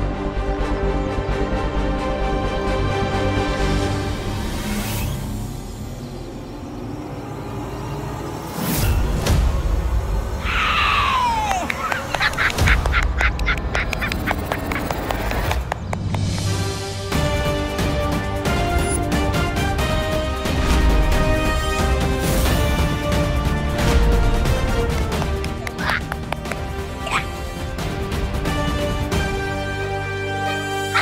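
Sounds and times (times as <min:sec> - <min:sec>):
dramatic background score: 0:00.0 - 0:31.0.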